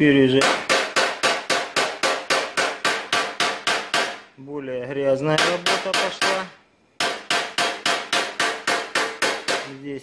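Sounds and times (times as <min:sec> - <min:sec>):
hammer tapping on metal punch: 0:00.4 - 0:04.2, 0:05.4 - 0:09.7.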